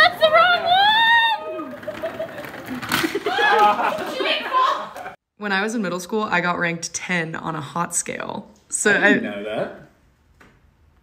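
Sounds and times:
woman screaming: 0.0 - 1.8, 3.2 - 4.9.

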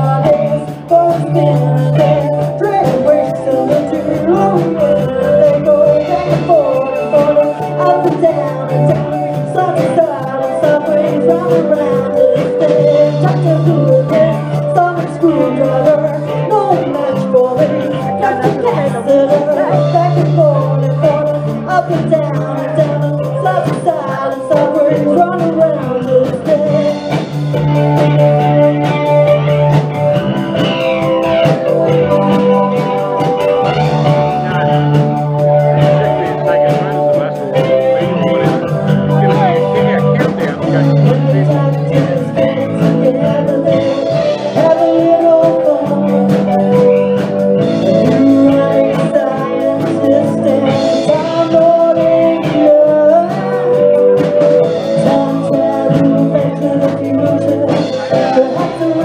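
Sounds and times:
drum kit beat: 0.0 - 59.0
electric guitar: 0.0 - 59.0
woman singing: 0.0 - 59.0.

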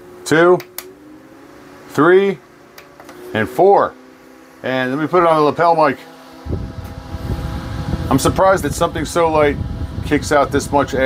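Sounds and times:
fan wind rumble on microphone: 3.3 - 11.0.

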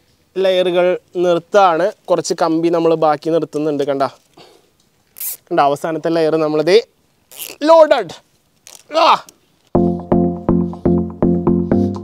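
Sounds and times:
cable tie ratcheting: 5.1 - 5.5, 7.3 - 7.6, 8.6 - 9.4.

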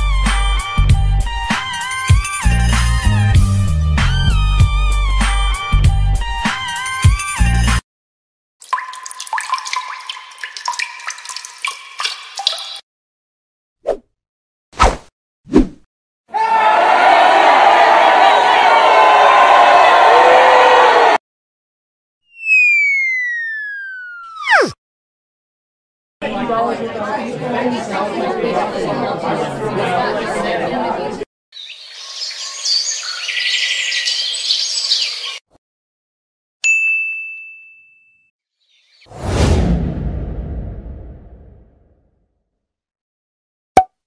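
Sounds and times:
crowd cheering: 16.3 - 21.2, 26.2 - 31.2
cartoon falling whistle: 22.3 - 24.8
bright ringing ding: 36.7 - 38.3
whoosh with deep rumble: 39.1 - 41.8.

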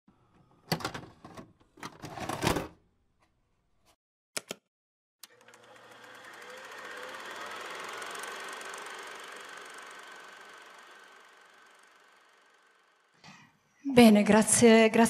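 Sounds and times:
fast mechanical rattle: 5.3 - 13.2.

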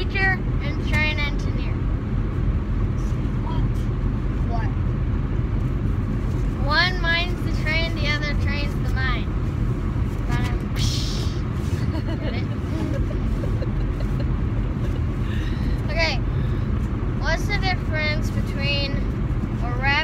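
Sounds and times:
car engine and road noise: 0.0 - 20.0.

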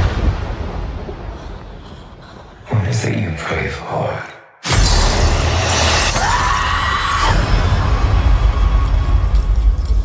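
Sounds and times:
cinematic trailer music: 0.0 - 10.0.

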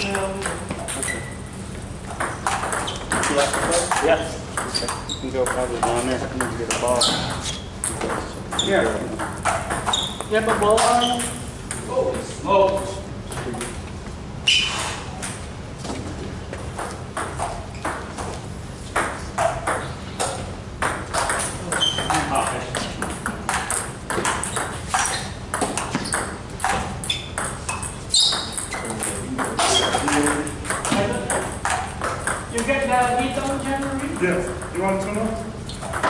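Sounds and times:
table tennis balls clicking: 2.1 - 11.9, 16.6 - 36.0
people talking: 3.2 - 7.4, 28.8 - 31.5.

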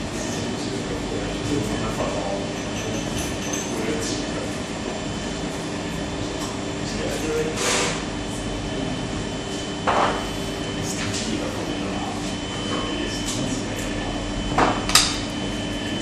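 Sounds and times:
faint constant hum: 0.0 - 16.0
low rumbling room noise: 0.0 - 16.0.

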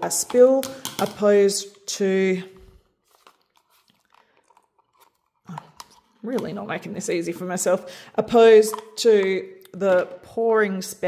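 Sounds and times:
plastic cup clicking and crackling: 3.1 - 6.6, 8.5 - 9.8.

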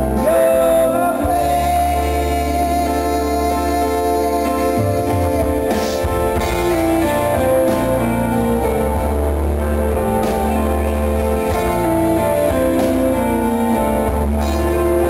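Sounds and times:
guitar playing: 0.0 - 15.0
live band music: 0.0 - 15.0.

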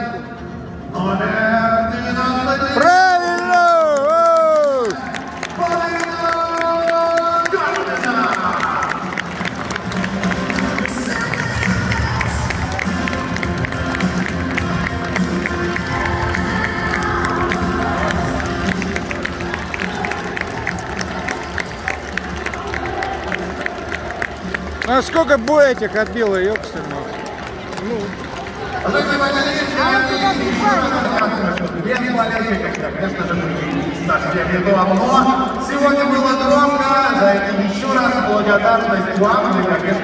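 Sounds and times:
crowd noise: 0.0 - 40.0
crowd cheering and clapping: 2.8 - 33.0
loud music with a beat: 9.1 - 24.8.

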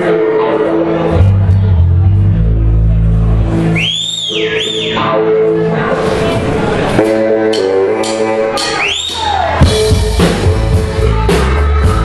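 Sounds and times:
live band playing: 0.0 - 12.0
shrill gliding whistle: 3.7 - 5.1, 8.7 - 9.4.

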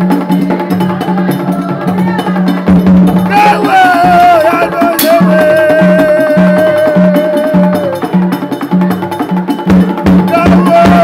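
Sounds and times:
drums: 0.0 - 11.0
clicking percussion: 0.1 - 11.0.

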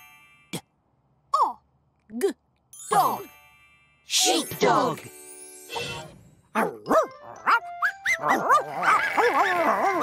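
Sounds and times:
light background music: 2.8 - 10.0
cartoon dog barking: 6.6 - 10.0.

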